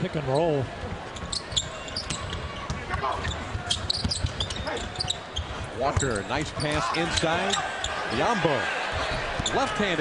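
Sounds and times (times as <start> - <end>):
sneaker squeaks: 1.1 - 8.0, 9.0 - 9.7.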